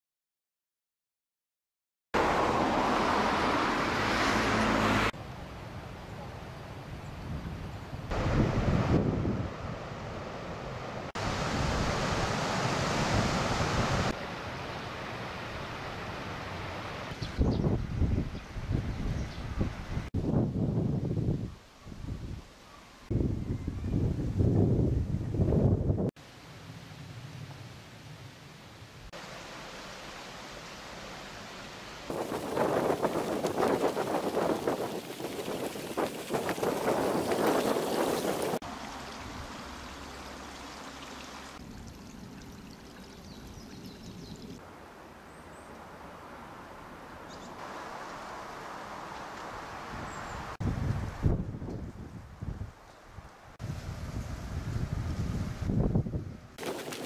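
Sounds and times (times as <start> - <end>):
wind rushing over microphone: 7.1 - 10.1, 17.2 - 22.5, 23.1 - 26.2, 32.1 - 38.6, 49.8 - 52.8, 53.6 - 57.0
low outdoor hiss: 26.2 - 32.6.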